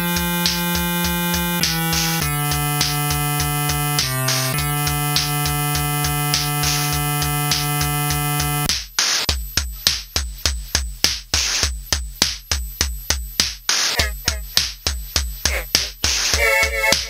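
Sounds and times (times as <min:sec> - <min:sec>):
drum machine kick: 0:00.0 - 0:17.0.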